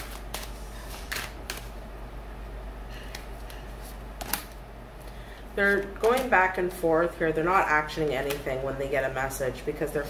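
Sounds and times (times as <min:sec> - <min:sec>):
cards being shuffled: 0:00.0 - 0:01.7, 0:03.1 - 0:06.3
steady low hum: 0:00.0 - 0:10.0.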